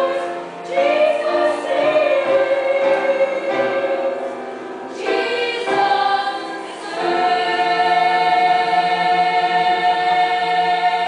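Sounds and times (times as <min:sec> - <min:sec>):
girls' choir singing gospel: 0:00.0 - 0:11.0.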